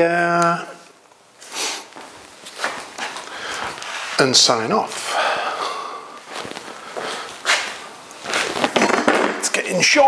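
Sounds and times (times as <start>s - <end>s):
footsteps on hard floor: 1.9s - 4.0s, 6.2s - 9.1s
rustling movement: 6.1s - 9.0s.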